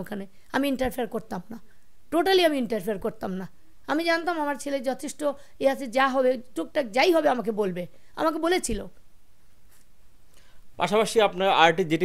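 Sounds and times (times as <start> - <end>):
man speaking: 10.8 - 12.0.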